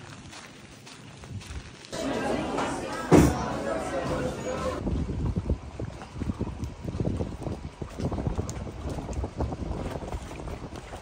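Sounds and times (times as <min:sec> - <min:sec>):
water lapping around a dock: 0:00.0 - 0:11.0
wind buffeting microphone: 0:04.8 - 0:11.0.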